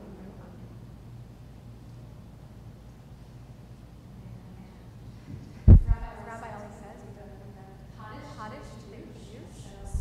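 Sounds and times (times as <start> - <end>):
loud deep thump: 5.7 - 6.1.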